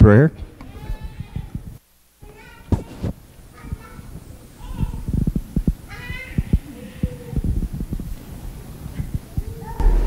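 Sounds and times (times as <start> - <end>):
low thumps and knocks: 9.8 - 10.0.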